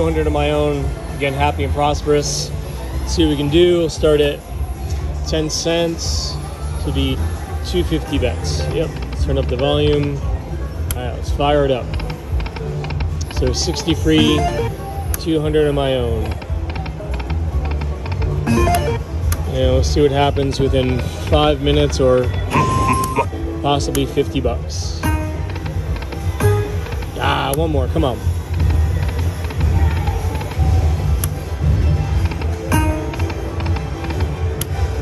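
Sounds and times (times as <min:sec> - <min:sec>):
low background game music: 0:07.0 - 0:35.0
slot machine music: 0:14.0 - 0:14.9, 0:18.4 - 0:19.7, 0:22.5 - 0:23.3, 0:24.9 - 0:27.5, 0:32.3 - 0:34.6
slot machine reel ticks: 0:18.5 - 0:19.0.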